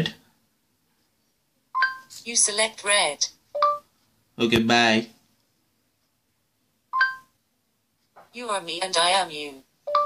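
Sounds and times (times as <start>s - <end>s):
two-tone phone beep: 1.8s - 2.1s, 3.6s - 3.9s, 6.9s - 7.4s.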